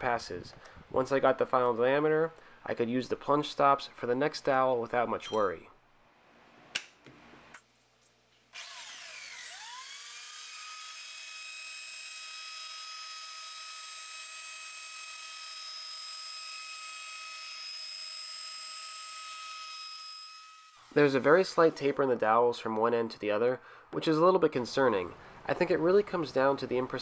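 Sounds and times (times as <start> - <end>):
router motor whining: 8.6 - 20.8.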